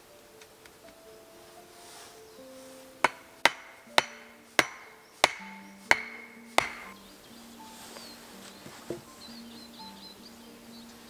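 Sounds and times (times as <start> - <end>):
axe knocking on wooden stake: 3.1 - 6.9.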